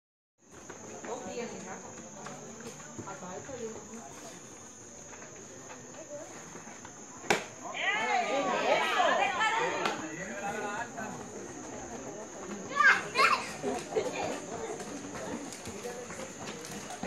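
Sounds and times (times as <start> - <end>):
faint crowd chatter: 0.5 - 17.0
ball smacking into leather mitt: 7.3 - 7.5.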